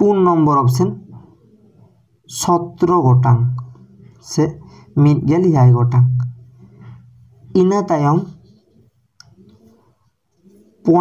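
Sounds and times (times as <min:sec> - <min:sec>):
man's voice: 0:02.3 - 0:06.4, 0:07.5 - 0:08.4.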